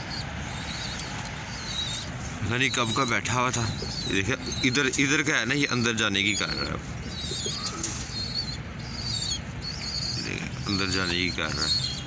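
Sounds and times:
pigeons chirping: 0.0 - 12.0.

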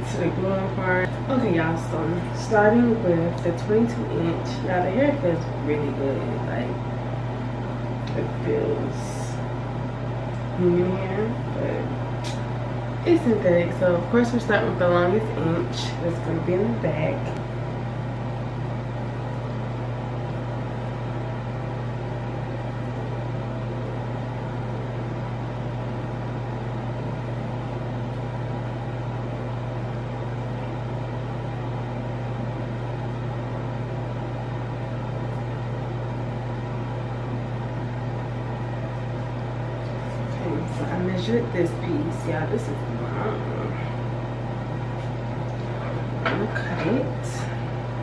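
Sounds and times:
low mechanical hum: 0.0 - 48.0.

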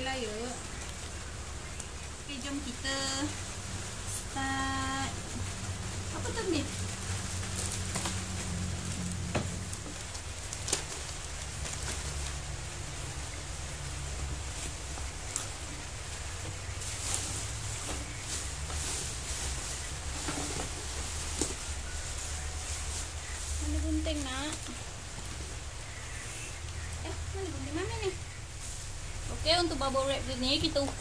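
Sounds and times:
rain hissing: 0.0 - 31.0
low hum: 0.6 - 30.6
plastic packing materials rustling: 6.2 - 13.4, 14.0 - 25.6.

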